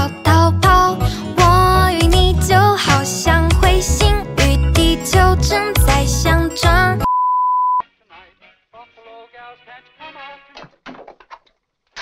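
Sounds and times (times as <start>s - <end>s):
censor bleep tone: 7.0s - 7.8s.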